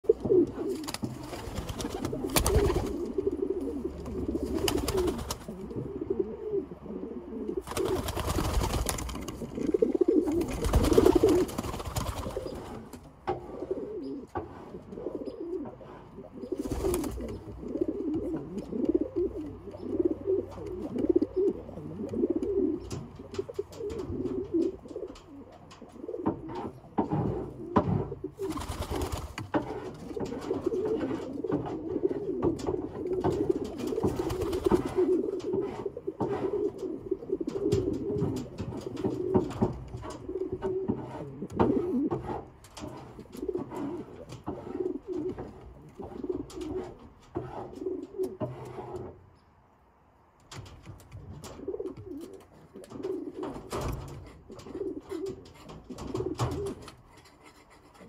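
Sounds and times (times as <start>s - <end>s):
pigeons cooing: 0.0s - 49.2s, 51.2s - 57.2s.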